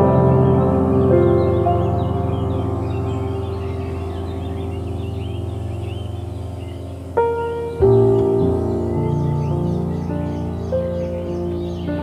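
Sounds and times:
birds chirping: 0.0s - 12.0s
soft piano chord: 0.0s - 12.0s.

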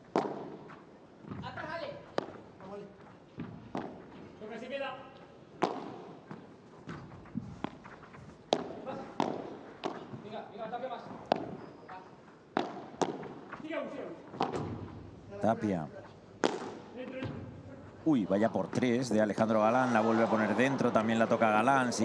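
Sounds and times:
ball hitting rackets and walls: 0.0s - 4.3s, 5.5s - 10.4s, 11.0s - 11.6s, 12.5s - 13.7s, 14.3s - 15.1s, 16.4s - 17.5s.

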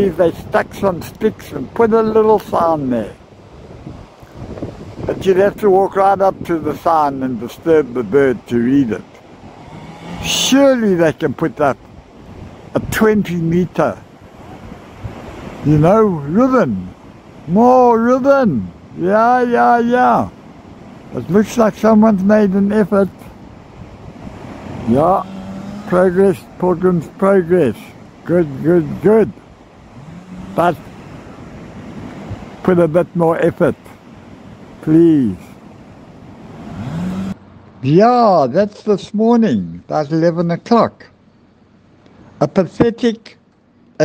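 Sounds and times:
man's voice: 0.0s - 3.2s, 5.1s - 9.1s, 10.2s - 11.8s, 12.8s - 14.0s, 15.6s - 16.9s, 17.5s - 20.3s, 21.1s - 23.2s, 24.8s - 25.3s, 25.9s - 29.4s, 30.6s - 30.8s, 32.6s - 33.9s, 34.8s - 35.5s, 37.8s - 41.1s
wind blowing on microphone: 0.0s - 37.4s
surf washing: 0.0s - 38.1s
wind on microphone: 2.4s - 6.8s, 11.8s - 13.2s, 14.0s - 15.9s, 23.2s - 32.8s.

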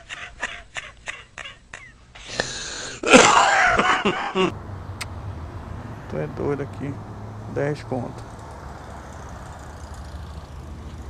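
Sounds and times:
faint outdoor background noise: 0.0s - 11.0s
vehicle engine idling: 4.5s - 11.0s.

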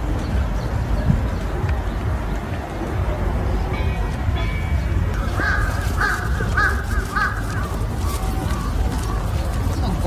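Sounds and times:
crow cawing: 5.3s - 7.8s.

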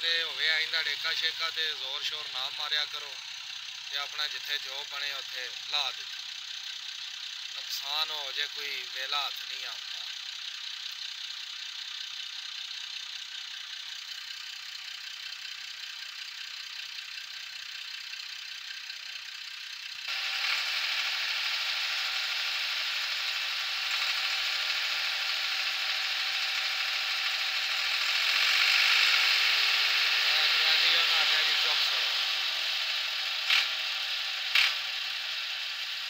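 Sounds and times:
tractor diesel engine rattling: 0.0s - 36.0s.

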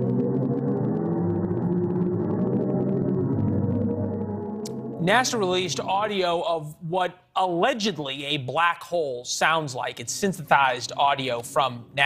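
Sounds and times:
eerie low drone: 0.0s - 6.4s.

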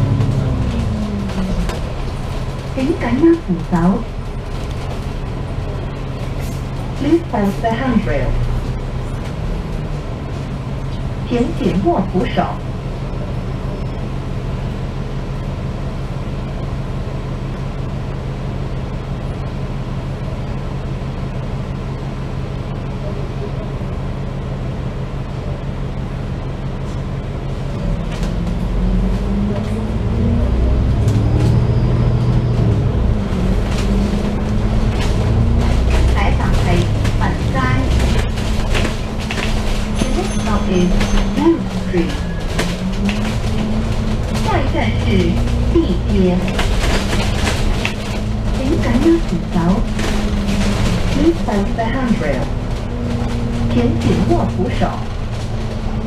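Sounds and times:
bus diesel engine: 0.0s - 56.0s.

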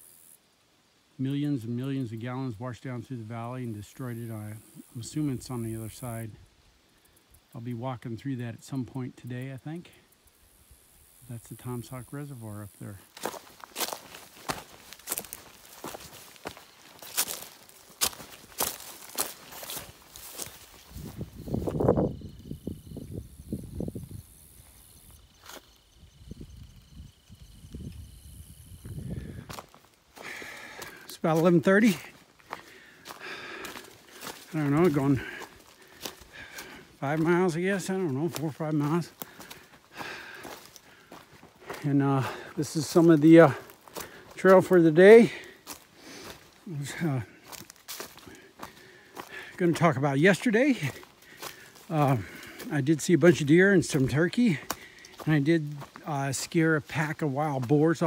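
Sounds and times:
footsteps on rocky leafy trail: 10.8s - 58.0s
man speaking: 11.3s - 13.1s, 31.1s - 32.2s, 34.4s - 35.5s, 37.0s - 39.2s, 41.7s - 43.7s, 44.4s - 45.5s, 46.6s - 47.4s, 49.6s - 51.0s, 51.9s - 58.0s.

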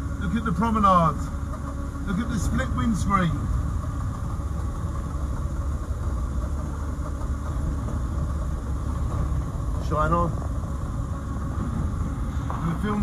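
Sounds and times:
car engine running: 0.0s - 13.0s
road noise: 0.0s - 13.0s.

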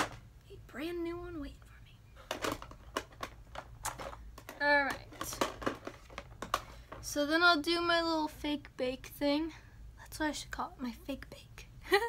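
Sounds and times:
small containers clicking together: 2.3s - 7.0s.

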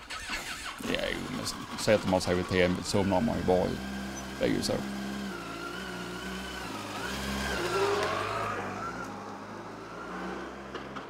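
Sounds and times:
motorcycle engine accelerating: 0.8s - 11.0s.

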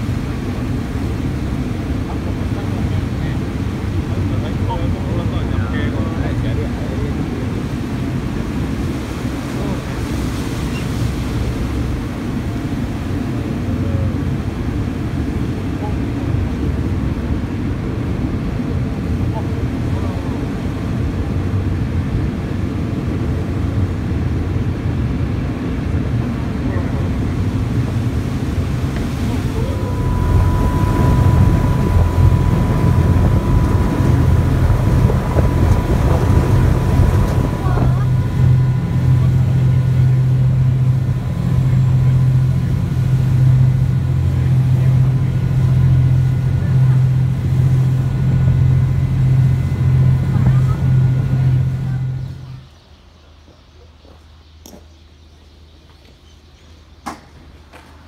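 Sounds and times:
wind on microphone: 0.0s - 52.7s
churning water: 0.0s - 52.9s
boat engine running: 0.0s - 54.3s
steady whine: 0.0s - 54.9s.

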